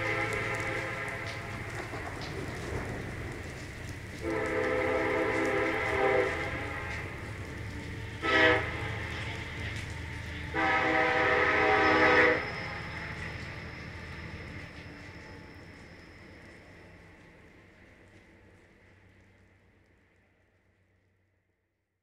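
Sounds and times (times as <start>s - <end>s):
horn blasts: 0.0s - 1.8s, 4.2s - 7.4s, 8.1s - 12.9s
steady low rumble: 0.0s - 10.6s.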